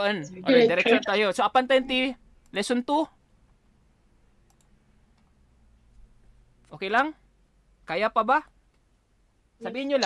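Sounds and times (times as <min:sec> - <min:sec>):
faint computer mouse clicks: 0:04.4 - 0:05.4.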